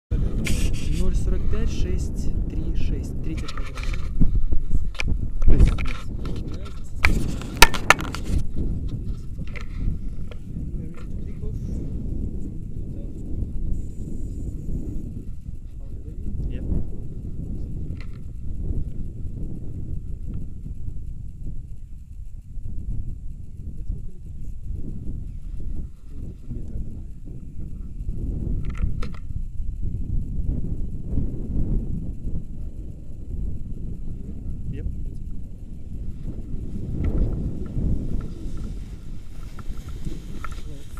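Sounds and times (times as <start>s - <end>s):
wind buffeting microphone: 0.1s - 40.9s.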